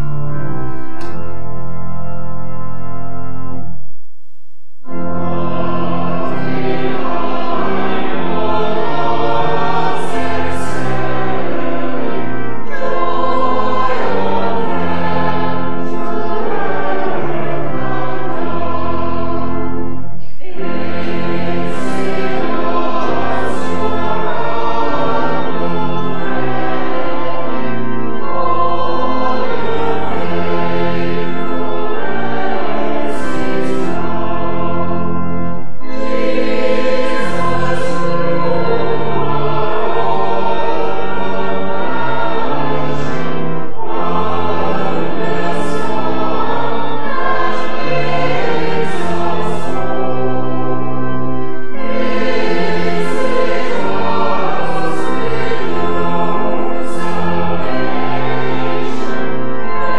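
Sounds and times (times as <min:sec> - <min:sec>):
choir singing: 0:00.0 - 0:01.5, 0:04.9 - 0:59.9
organ: 0:00.0 - 0:03.8, 0:04.8 - 0:59.9.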